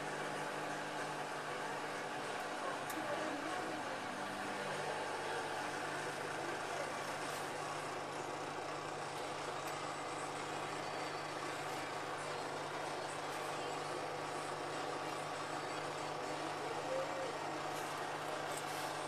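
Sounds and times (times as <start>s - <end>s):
washing machine running: 0.0s - 19.0s.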